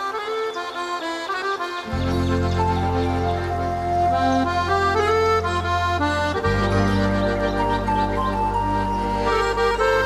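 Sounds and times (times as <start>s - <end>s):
accordion playing a hymn melody: 0.0s - 10.0s
orchestrated backing: 0.0s - 10.0s.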